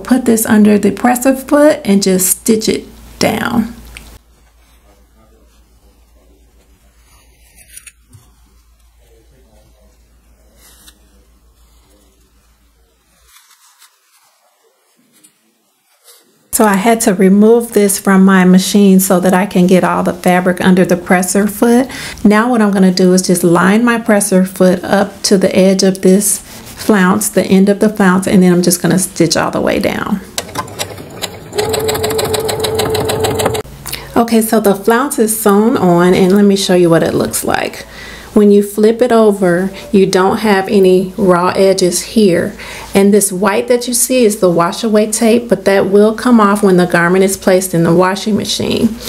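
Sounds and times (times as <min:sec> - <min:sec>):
fabric rustling on tape: 0:04.2 - 0:16.5
sewing machine stitching: 0:30.4 - 0:33.7.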